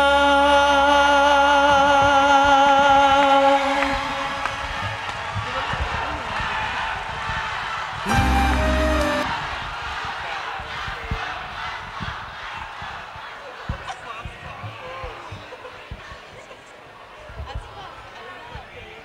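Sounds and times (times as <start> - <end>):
man singing with vibrato: 0.0 - 4.4, 8.1 - 9.3
pop ballad backing music: 8.1 - 9.3
short loud low note: 8.1 - 9.4.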